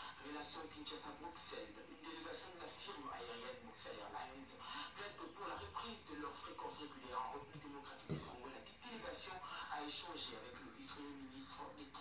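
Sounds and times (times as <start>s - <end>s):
woman reading news on television: 0.0s - 12.0s.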